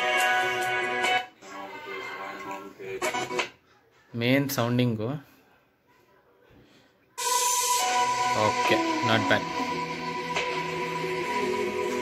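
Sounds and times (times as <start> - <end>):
background music from laptop speakers: 0.0 - 4.6, 7.2 - 12.0.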